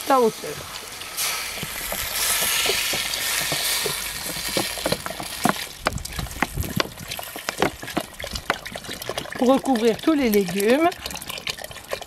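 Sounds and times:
water pouring from bottle: 0.4 - 12.0
bottle glugging: 1.1 - 12.0.

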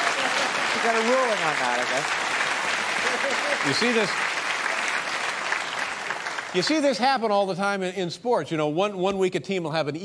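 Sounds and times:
audience applauding: 0.0 - 7.0.

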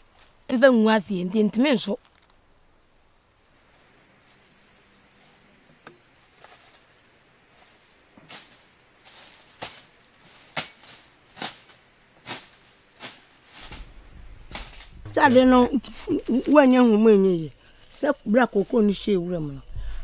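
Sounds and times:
high-pitched insect drone: 3.4 - 20.0
machete chopping undergrowth: 9.6 - 15.5.

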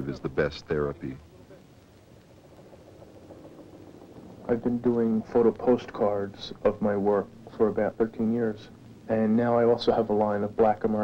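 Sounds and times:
faint mechanical hum: 0.0 - 11.0.

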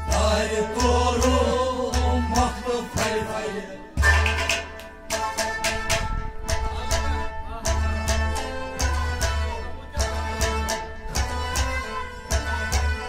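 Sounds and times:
drum strokes: 0.0 - 7.0
plucked lute: 0.0 - 13.0.

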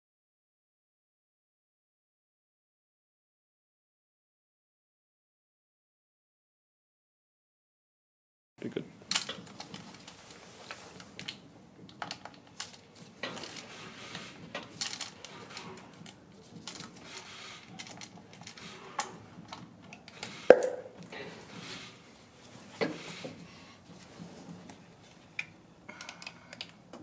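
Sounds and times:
sharp knock: 20.5 - 20.9
light clicks of plastic parts: 24.6 - 27.0.

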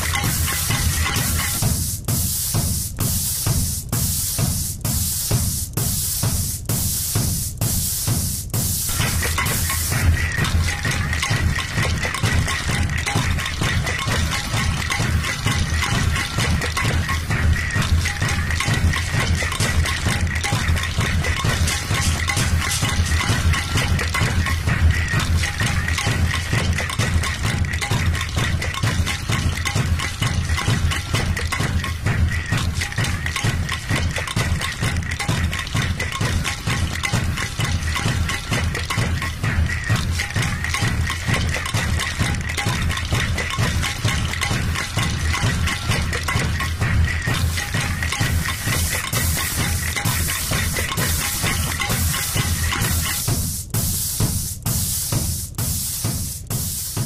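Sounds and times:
pulsing kick drum: 0.0 - 57.0
hiss: 48.5 - 57.0.

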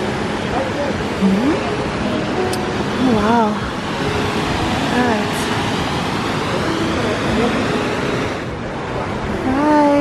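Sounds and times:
waterfall rushing over rock: 0.0 - 10.0.

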